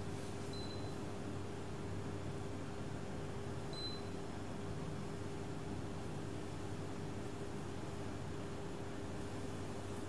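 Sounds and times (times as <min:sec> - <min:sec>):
room tone hum and hiss: 0:00.0 - 0:10.0
faint high beep: 0:00.5 - 0:00.9, 0:03.8 - 0:04.1.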